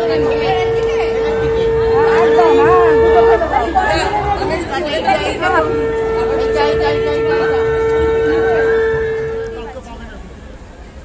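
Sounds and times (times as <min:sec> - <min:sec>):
conch shell blown: 0:00.0 - 0:09.9
people chattering: 0:00.0 - 0:11.0.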